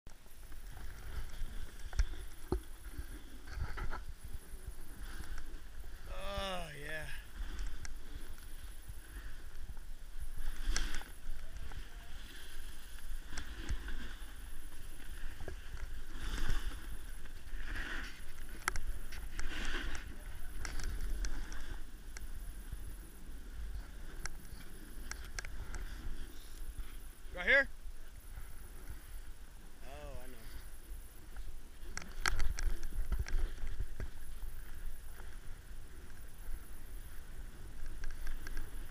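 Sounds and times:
wind rumble on microphone: 0:00.1 - 0:38.9
snowboard sliding over snow: 0:00.2 - 0:38.9.

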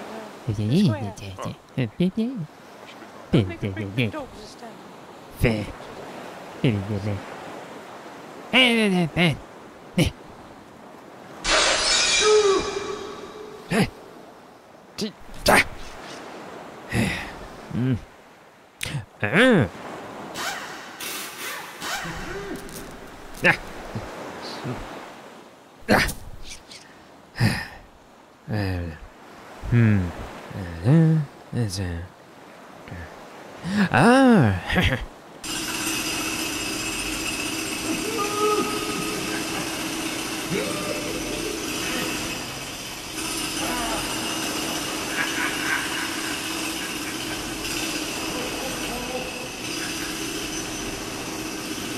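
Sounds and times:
cartoon whoosh: 0:11.5 - 0:13.3
voiced grunt rising and falling: 0:16.9 - 0:18.1, 0:29.6 - 0:31.3
pitched glide: 0:35.4 - 0:51.9
steady machine-like hum: 0:35.4 - 0:51.9.

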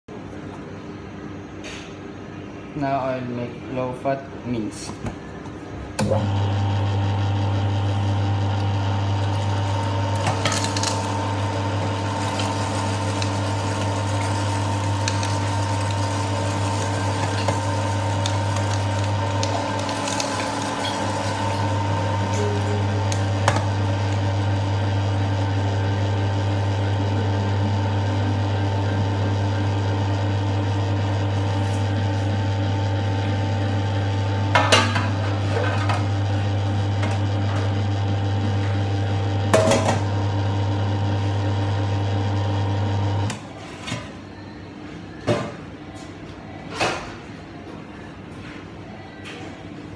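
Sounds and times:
electric meat grinder humming: 0:06.0 - 0:43.4.

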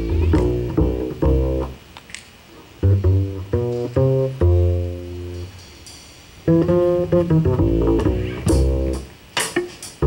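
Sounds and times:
double bass plucked notes: 0:00.0 - 0:01.9, 0:02.7 - 0:05.7, 0:06.4 - 0:09.2.

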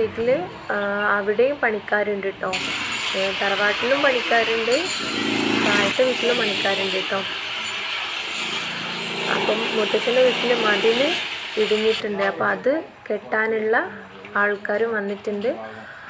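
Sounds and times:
people talking: 0:00.0 - 0:02.6, 0:03.2 - 0:04.9, 0:05.6 - 0:07.3, 0:09.3 - 0:15.8
power tool hissing rattle: 0:02.5 - 0:12.0.

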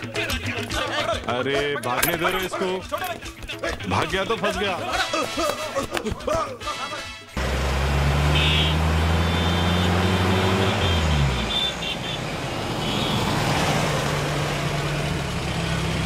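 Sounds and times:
vehicle engines running: 0:07.4 - 0:16.0.

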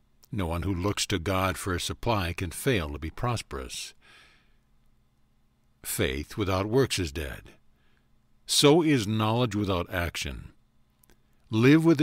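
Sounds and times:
person reading aloud: 0:00.2 - 0:04.0, 0:05.8 - 0:07.6, 0:08.5 - 0:10.6, 0:11.5 - 0:12.0
soft breath: 0:04.0 - 0:04.8, 0:07.6 - 0:08.3.

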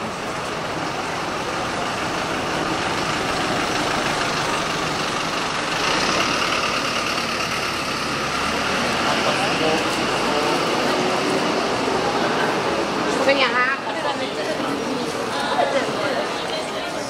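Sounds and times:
deep engine rumble: 0:00.0 - 0:13.2
vehicle engine running: 0:00.0 - 0:13.2.

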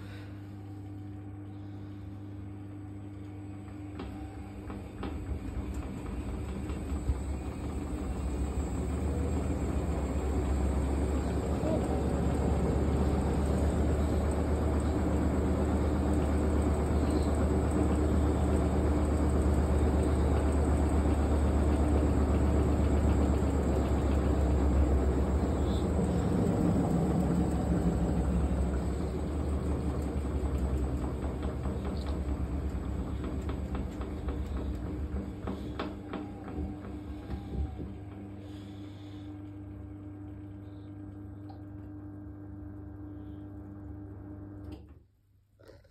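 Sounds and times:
washing machine drum humming: 0:02.5 - 0:43.1.

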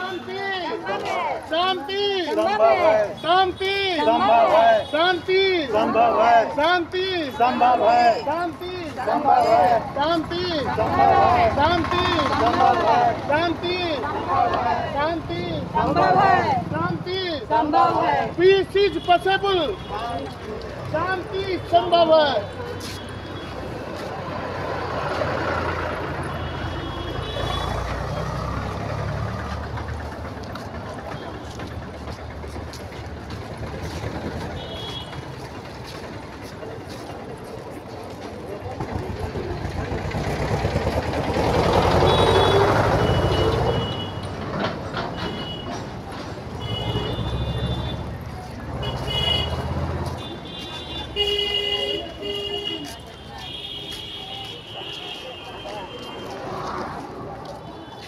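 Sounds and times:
heavy vehicles engine rumble: 0:00.0 - 0:58.0
vehicle engine running: 0:27.8 - 0:43.9
car horn blasts: 0:42.0 - 0:44.3, 0:46.6 - 0:48.0, 0:48.8 - 0:49.6, 0:50.2 - 0:56.3.

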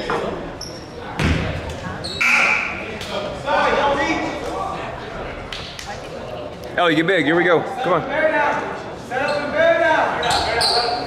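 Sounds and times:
voices calling out: 0:02.0 - 0:04.0.

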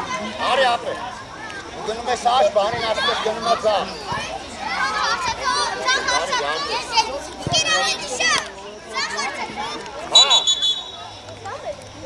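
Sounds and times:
children shouting: 0:02.6 - 0:11.6.

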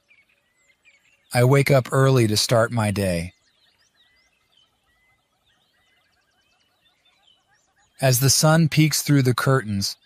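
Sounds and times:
birds chirping and whistling: 0:00.0 - 0:10.0.

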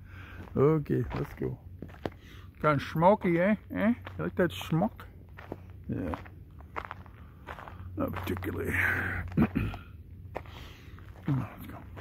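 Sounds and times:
footsteps on dirt trail: 0:00.1 - 0:12.0.

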